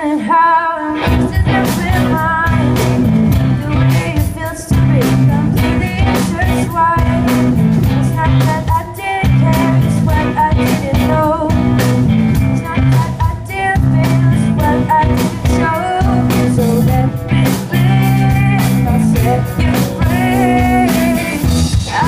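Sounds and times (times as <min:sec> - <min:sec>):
woman singing: 0:00.0 - 0:22.0
electric guitar: 0:00.9 - 0:22.0
drum kit: 0:01.0 - 0:22.0
electric bass: 0:01.0 - 0:22.0.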